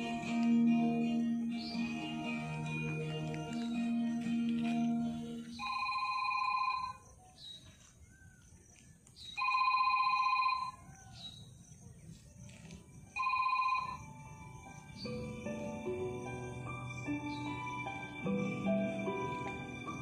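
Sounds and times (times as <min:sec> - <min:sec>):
music: 0:00.0 - 0:06.2, 0:12.5 - 0:20.0
electronic telephone ringing: 0:05.1 - 0:07.0, 0:09.4 - 0:10.8, 0:13.2 - 0:14.2.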